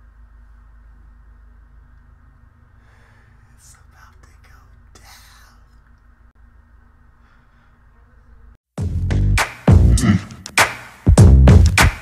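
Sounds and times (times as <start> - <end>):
low room hum: 0.0 - 8.6
man whispering excitedly: 3.4 - 5.9.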